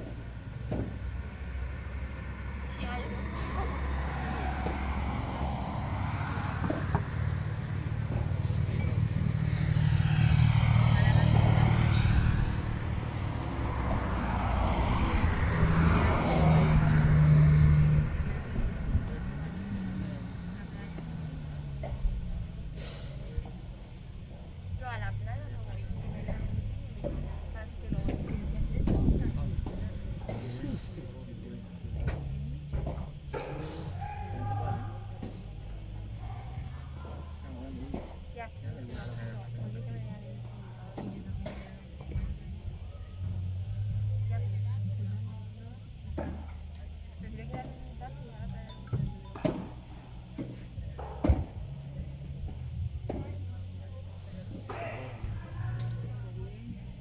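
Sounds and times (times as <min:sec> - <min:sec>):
vehicle engine passing by: 0:00.0 - 0:57.0.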